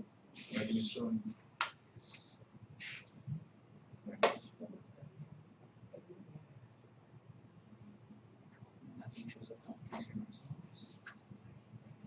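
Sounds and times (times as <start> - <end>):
faint talk: 0.5 - 1.3.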